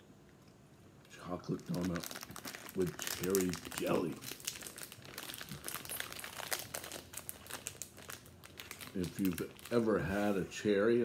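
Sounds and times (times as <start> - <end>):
plastic wrapper crinkling: 1.0 - 10.5.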